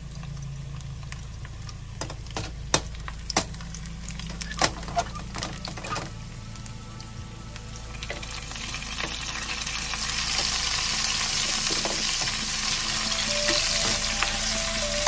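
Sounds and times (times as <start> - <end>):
tongs knocking: 2.0 - 3.6
food sizzling in frying pan: 7.9 - 15.0.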